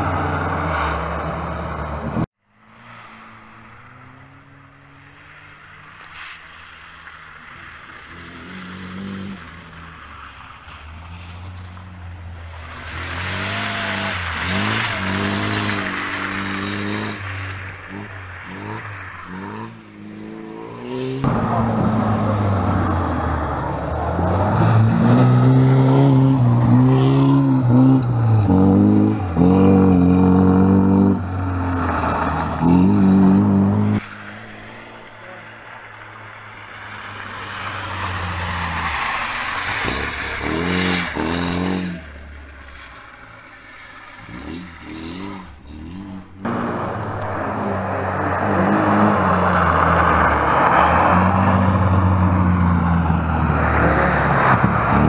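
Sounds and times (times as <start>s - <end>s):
rally car engine revving: 7.4s - 55.0s
tyres scraping on gravel: 8.4s - 55.0s.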